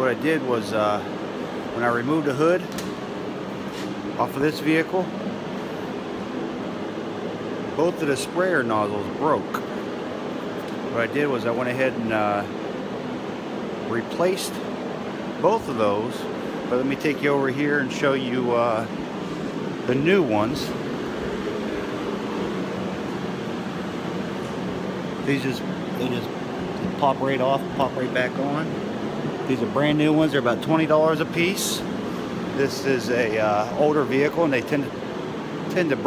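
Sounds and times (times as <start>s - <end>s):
workshop room hum and hiss: 0.0s - 36.0s.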